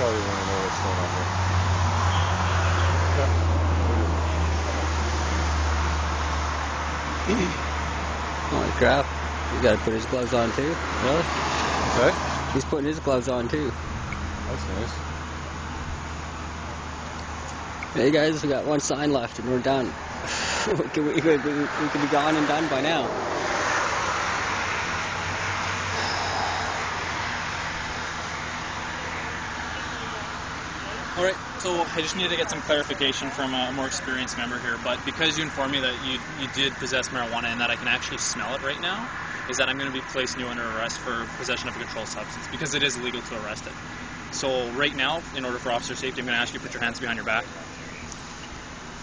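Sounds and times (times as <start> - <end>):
constant hiss: 0.0 - 49.0
passing road traffic: 0.0 - 49.0
vehicle engine idling: 0.0 - 49.0
faint voices: 25.9 - 27.0, 28.8 - 43.8.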